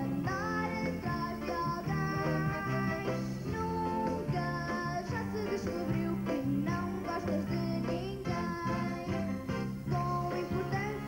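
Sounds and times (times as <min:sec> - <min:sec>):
band accompaniment: 0:00.0 - 0:11.0
girl singing into a microphone: 0:00.0 - 0:11.0.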